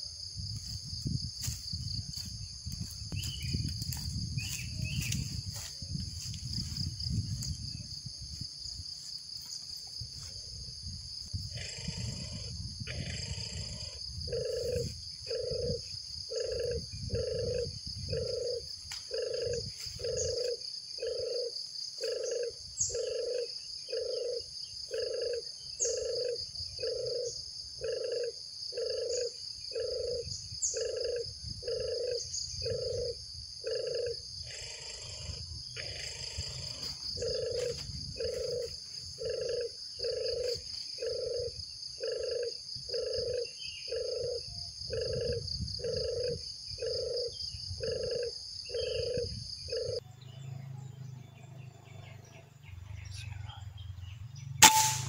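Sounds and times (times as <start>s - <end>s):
high-pitched insect drone: 0.0s - 50.0s
bird chirps: 3.1s - 5.7s.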